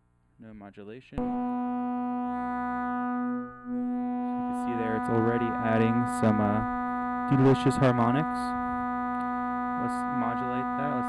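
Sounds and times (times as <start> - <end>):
steady synthesizer tone: 1.2 - 11.0.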